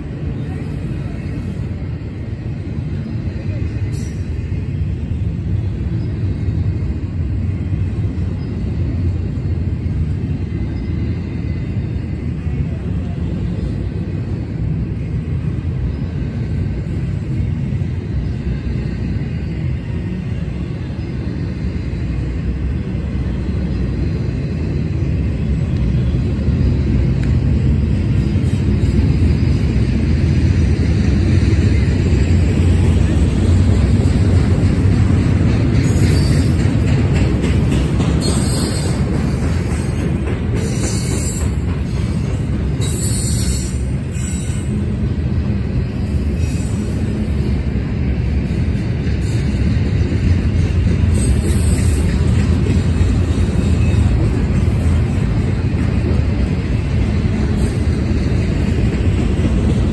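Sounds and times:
train wheels rumbling on track: 0.0 - 59.9.

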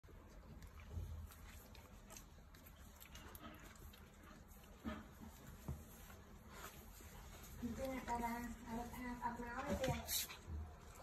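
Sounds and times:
quiet puppy sounds: 0.0 - 11.0.

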